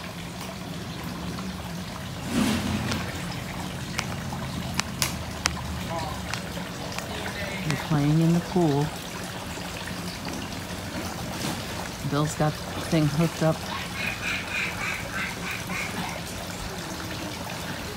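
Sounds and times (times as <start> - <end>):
water running from hose: 0.0 - 17.9.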